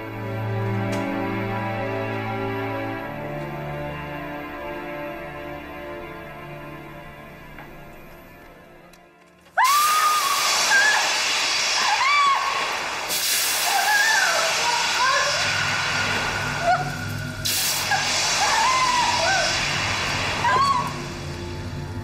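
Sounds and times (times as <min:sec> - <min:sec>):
low dramatic music: 0:00.0 - 0:09.6, 0:14.6 - 0:22.0
woman screaming and wailing: 0:09.6 - 0:11.2, 0:11.8 - 0:12.6, 0:13.6 - 0:15.5, 0:18.0 - 0:19.6, 0:20.4 - 0:21.0
loud hiss of steam: 0:09.6 - 0:22.0.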